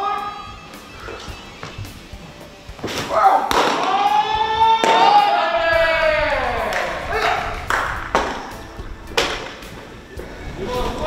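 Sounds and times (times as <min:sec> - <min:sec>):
voices shouting: 0:00.0 - 0:01.6, 0:02.8 - 0:11.0.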